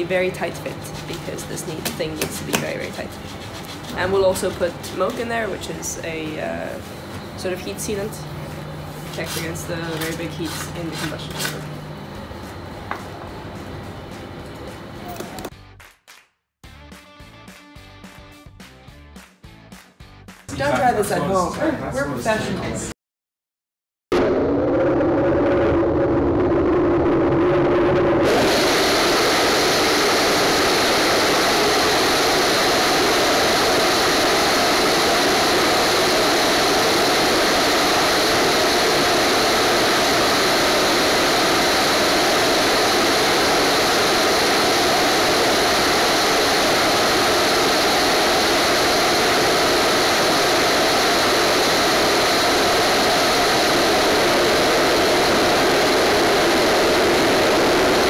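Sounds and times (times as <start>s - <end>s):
rocket engine rushing roar: 0.0s - 13.3s, 24.1s - 58.0s.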